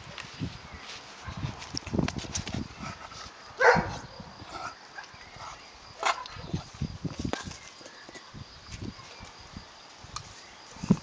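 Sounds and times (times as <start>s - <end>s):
scuffling on grass: 0.0s - 4.0s
puppy barking: 3.6s - 4.0s.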